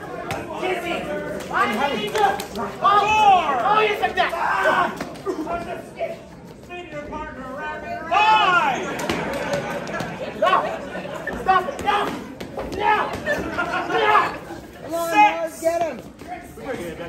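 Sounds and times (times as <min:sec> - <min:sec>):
voices yelling and chattering: 0:00.0 - 0:17.0.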